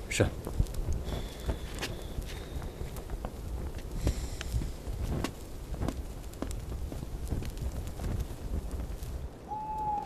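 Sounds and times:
footsteps on hard ground: 0:00.4 - 0:09.2.

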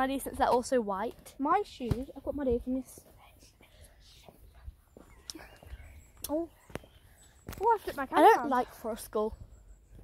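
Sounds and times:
soft low thumps: 0:01.4 - 0:07.8
faint whispering: 0:02.7 - 0:07.2.

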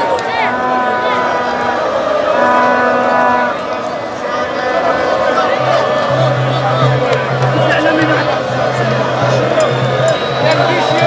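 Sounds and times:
crowd shouting and cheering: 0:00.0 - 0:11.0
steady horn note: 0:00.4 - 0:04.0.

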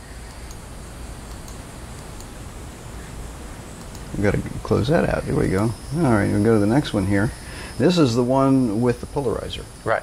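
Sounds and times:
low background hiss: 0:00.0 - 0:10.0
faint sharp high ticks: 0:01.3 - 0:02.3, 0:03.8 - 0:04.0.

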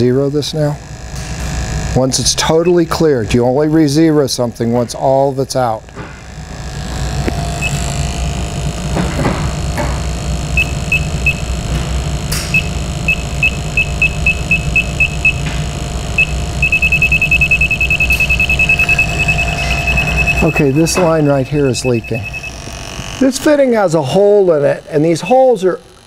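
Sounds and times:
steady low hum: 0:00.0 - 0:26.0
leak detector beeping: 0:02.3 - 0:03.1, 0:06.9 - 0:24.2.

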